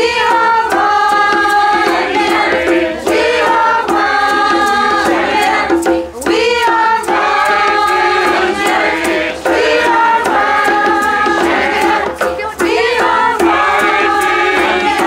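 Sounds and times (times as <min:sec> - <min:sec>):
choir singing: 0:00.0 - 0:15.0
hand drum beat: 0:00.0 - 0:15.0.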